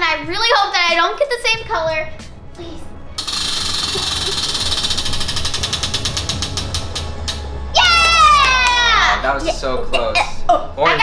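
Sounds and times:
prize wheel pointer clicking: 3.2 - 7.4
girl screaming excitedly: 7.8 - 9.2.

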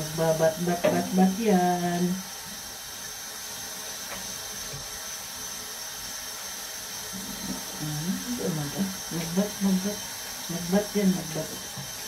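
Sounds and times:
tap water running into sink: 0.0 - 12.0.

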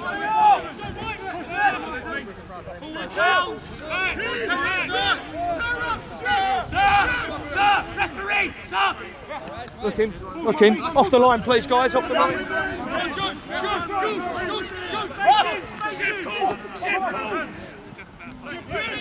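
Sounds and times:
crowd babble: 0.0 - 19.0.

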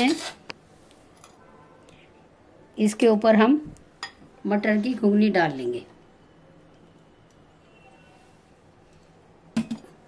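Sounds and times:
glassware knocking: 9.6 - 9.9.

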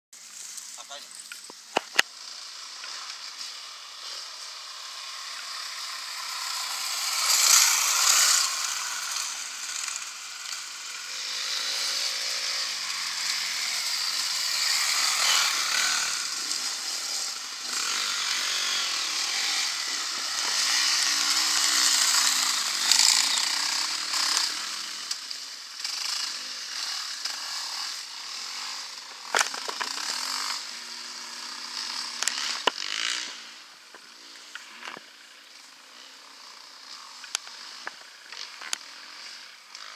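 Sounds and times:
dirt bike engines revving: 0.2 - 39.9
sharp clicks: 1.3 - 2.1.

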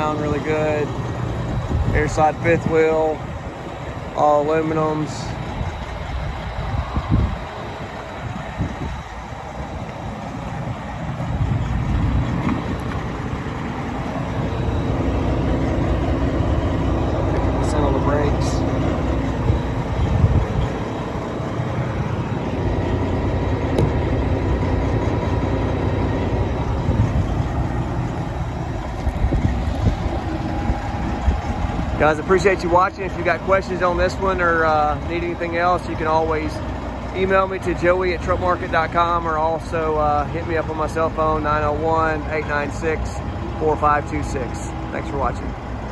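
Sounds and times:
truck engine idling: 0.0 - 45.9.

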